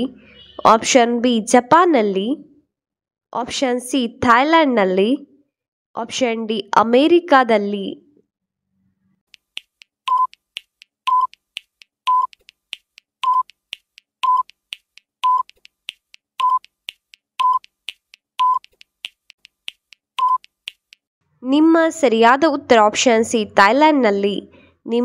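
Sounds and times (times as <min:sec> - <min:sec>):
faint ticks: 0:09.3 - 0:21.1
countdown timer beeps: 0:10.1 - 0:10.4, 0:11.1 - 0:11.4, 0:12.1 - 0:12.4, 0:13.2 - 0:13.6, 0:14.2 - 0:14.6, 0:15.2 - 0:15.6, 0:16.4 - 0:16.8, 0:17.4 - 0:17.8, 0:18.4 - 0:18.7, 0:20.2 - 0:20.6.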